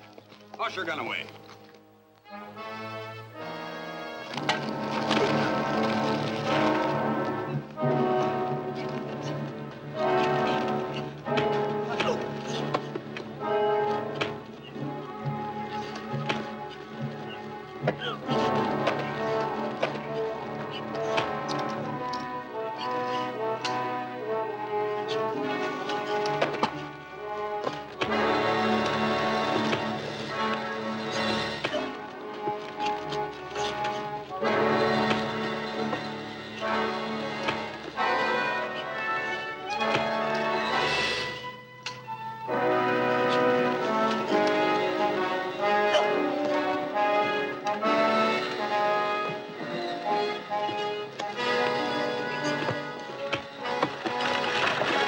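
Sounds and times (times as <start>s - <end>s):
orchestral action music with brass: 0.6s - 55.0s.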